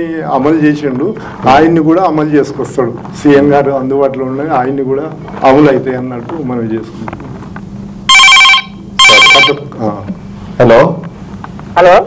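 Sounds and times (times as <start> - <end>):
telephone ringing: 8.1 - 9.7.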